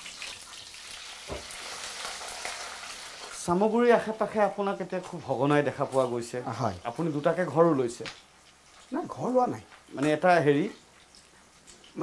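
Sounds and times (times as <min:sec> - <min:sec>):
fish sizzling in hot oil: 0:00.0 - 0:04.8, 0:05.9 - 0:12.0.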